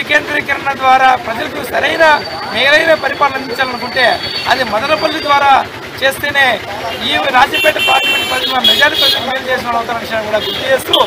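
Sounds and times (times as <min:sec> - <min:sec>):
man speaking into a microphone: 0:00.0 - 0:11.0
vehicle horns honking: 0:06.9 - 0:09.4, 0:10.2 - 0:11.0.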